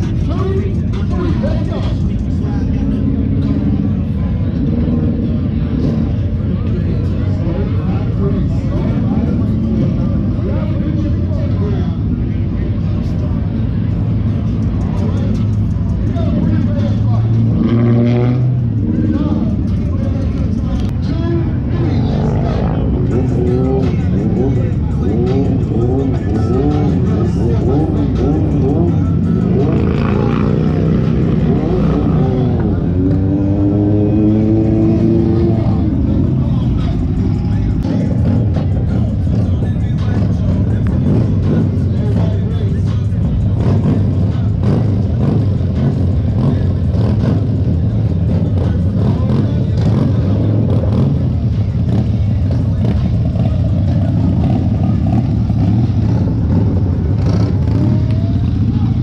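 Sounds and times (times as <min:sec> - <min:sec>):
motorcycle engines running slowly: 0:00.0 - 0:59.0
music: 0:00.0 - 0:59.0
voices: 0:00.0 - 0:59.0.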